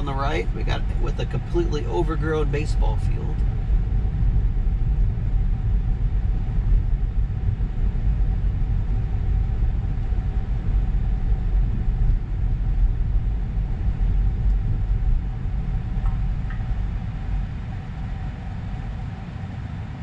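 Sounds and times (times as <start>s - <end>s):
road and tyre noise: 0.0s - 20.0s.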